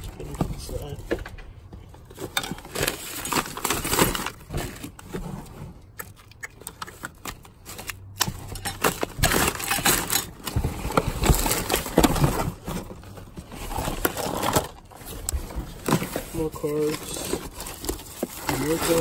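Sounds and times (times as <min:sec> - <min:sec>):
paper and cardboard rustling: 0:00.0 - 0:06.0, 0:06.9 - 0:19.0.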